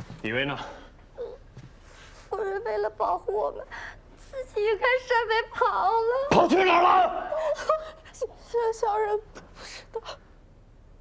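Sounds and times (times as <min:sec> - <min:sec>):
man speaking sharply: 0:06.3 - 0:07.5
woman crying while speaking: 0:07.2 - 0:10.2.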